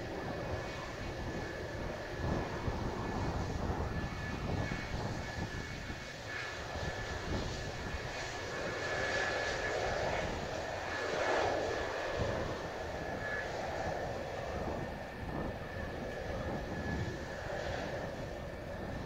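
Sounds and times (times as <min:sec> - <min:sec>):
jet engine whine and rush: 0:00.0 - 0:19.0
wind rumble on microphone: 0:00.0 - 0:19.0.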